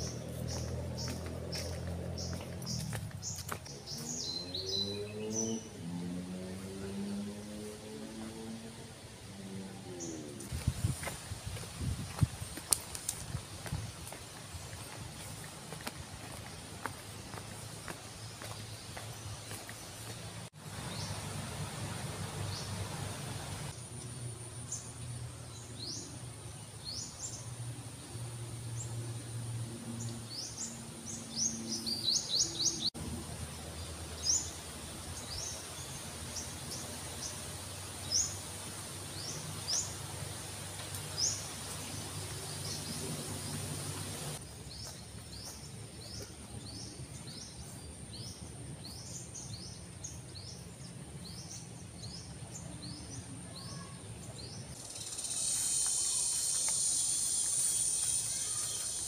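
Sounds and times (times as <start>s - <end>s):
birds chirping: 0.0s - 27.7s, 29.9s - 59.0s
high insect drone: 54.8s - 59.0s
hissing insect buzz: 54.8s - 59.0s.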